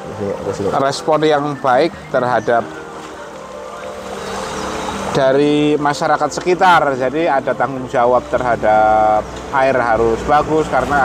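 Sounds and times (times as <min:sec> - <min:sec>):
faint background music: 0:00.0 - 0:11.0
water rushing down a channel: 0:02.6 - 0:06.0.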